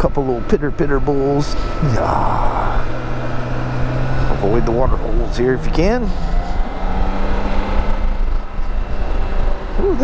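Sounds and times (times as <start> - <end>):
low wind rumble: 0.0 - 10.0
motorcycle engine running: 0.0 - 10.0.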